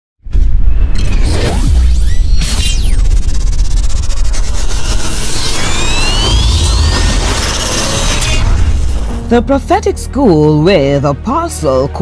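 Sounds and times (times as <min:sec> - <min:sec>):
deep bass rumble: 0:00.2 - 0:10.6
whooshing sound effects: 0:00.3 - 0:09.4.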